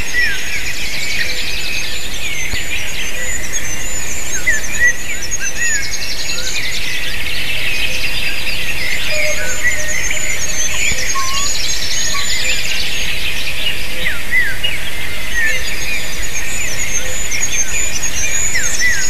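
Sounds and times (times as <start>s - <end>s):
songbirds singing: 0.0s - 19.0s.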